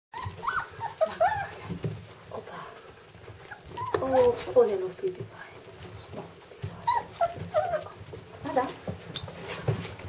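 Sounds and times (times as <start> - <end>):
puppies whining: 0.1 - 4.8, 5.6 - 10.0.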